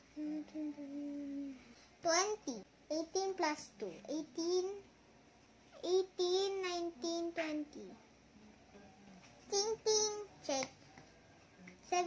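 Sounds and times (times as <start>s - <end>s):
child humming: 0.0s - 1.7s.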